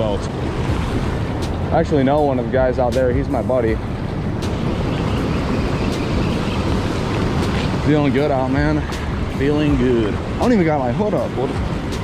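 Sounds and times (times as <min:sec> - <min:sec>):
river rapids rushing: 0:00.0 - 0:12.0.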